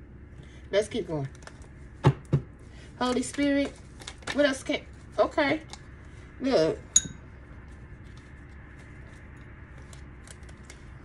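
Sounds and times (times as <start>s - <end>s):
low room hum: 0.0s - 11.0s
cards ticking and rustling: 8.0s - 11.0s.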